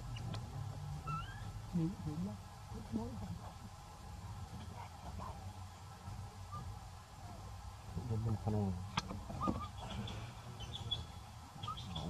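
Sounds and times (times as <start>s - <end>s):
baby monkey squeaky call: 1.0s - 1.5s, 9.4s - 12.0s.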